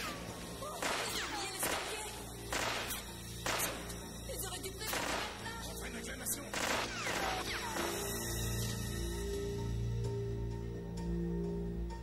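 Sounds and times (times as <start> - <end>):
echoing gunshots: 0.8 - 4.0, 4.8 - 5.6, 6.4 - 8.0.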